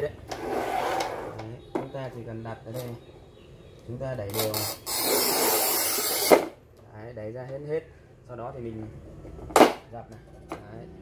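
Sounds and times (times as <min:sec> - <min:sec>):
tile cutter scoring a tile: 0:04.4 - 0:06.5.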